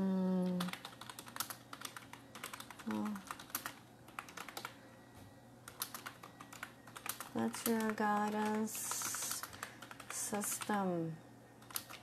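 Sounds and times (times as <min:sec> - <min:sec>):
typing on computer keyboard: 0:00.4 - 0:04.8, 0:05.7 - 0:10.8, 0:11.6 - 0:12.0.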